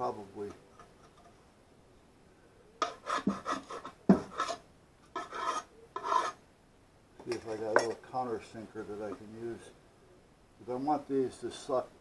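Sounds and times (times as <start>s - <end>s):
tools scraping on workbench: 2.8s - 6.4s.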